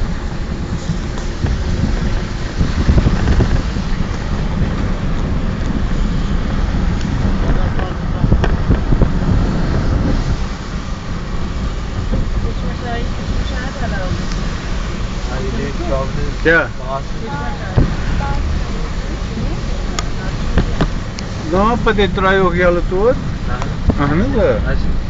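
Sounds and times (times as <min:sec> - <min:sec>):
road and wind noise: 0:00.0 - 0:25.0.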